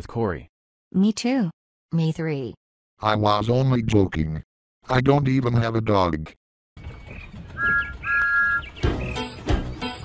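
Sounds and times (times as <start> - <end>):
faint birdsong: 6.8 - 10.0
music with a beat: 8.8 - 10.0.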